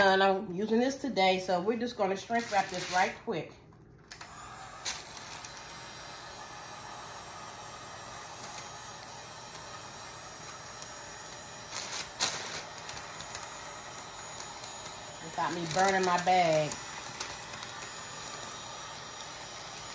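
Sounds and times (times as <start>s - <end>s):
heat gun fan hissing: 1.2s - 3.3s, 4.1s - 19.9s.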